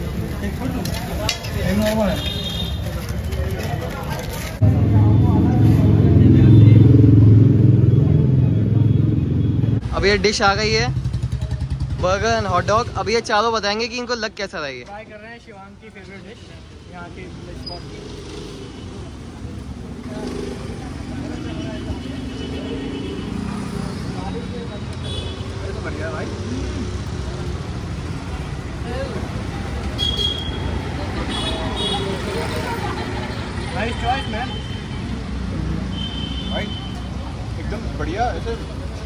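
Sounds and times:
cars passing close by: 0:03.9 - 0:13.3, 0:17.2 - 0:39.0.

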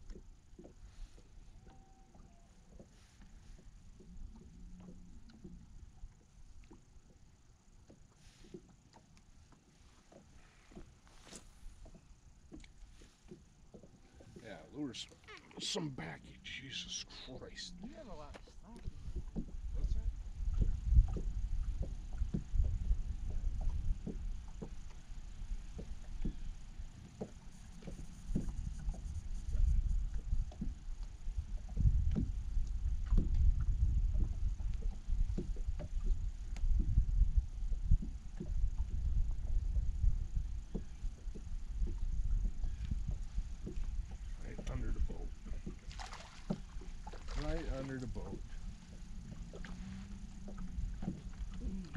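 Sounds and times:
water slapping against hull: 0:00.0 - 0:51.9
wind rumbling on microphone: 0:15.4 - 0:51.9.

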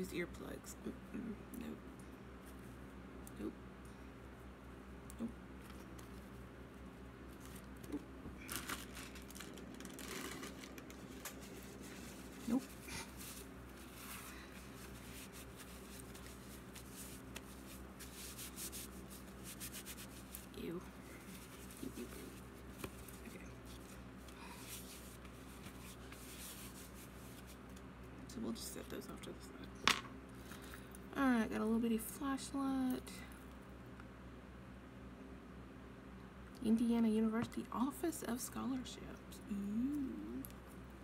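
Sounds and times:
steady low hum: 0:00.0 - 0:41.0
rustling and handling of a bag: 0:05.6 - 0:27.8.

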